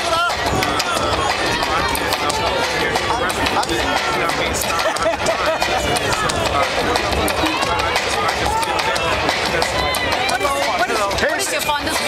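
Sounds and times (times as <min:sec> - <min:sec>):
crowd voices talking: 0:00.0 - 0:12.0.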